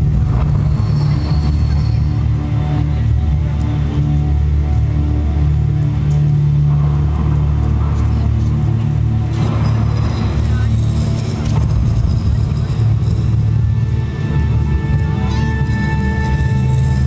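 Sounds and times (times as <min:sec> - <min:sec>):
deep droning music over loudspeakers: 0:00.0 - 0:17.0
rushing noise: 0:00.0 - 0:17.0.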